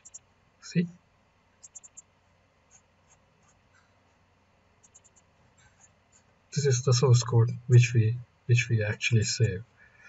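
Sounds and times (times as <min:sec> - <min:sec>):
computer mouse clicks: 0:00.0 - 0:00.3, 0:01.6 - 0:02.1, 0:04.8 - 0:06.0.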